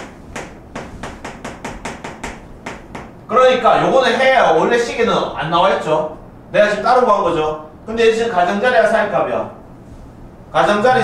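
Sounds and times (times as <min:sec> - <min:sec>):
chalk tapping and scraping: 0:00.0 - 0:03.2.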